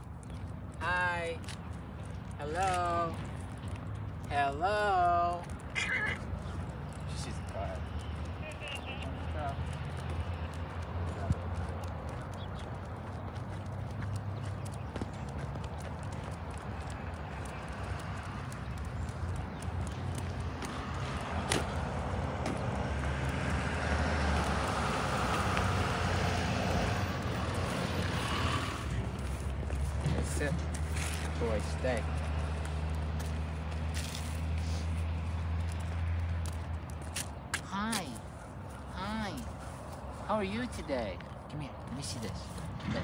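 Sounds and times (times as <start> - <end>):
footsteps on pavement: 0.0 - 43.0.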